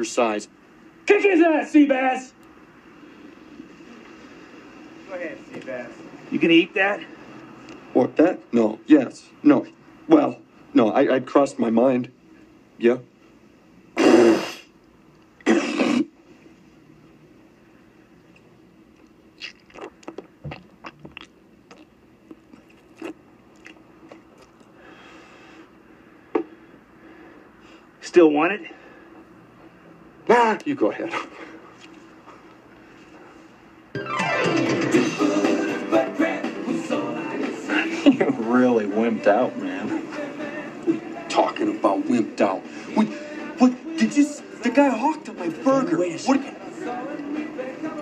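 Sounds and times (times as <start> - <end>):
music with falling sweep: 34.0 - 37.1.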